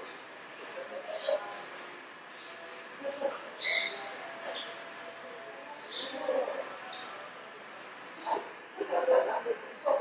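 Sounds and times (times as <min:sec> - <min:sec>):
loud high-pitched bird call: 0:03.6 - 0:04.8.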